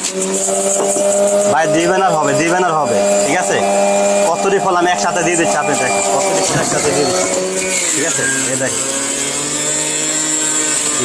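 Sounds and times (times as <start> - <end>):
juicer motor humming: 0.0 - 11.0.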